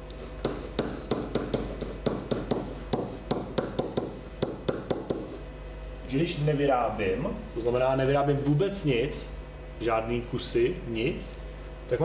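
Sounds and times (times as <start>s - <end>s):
marker writing on whiteboard: 0.1s - 5.5s.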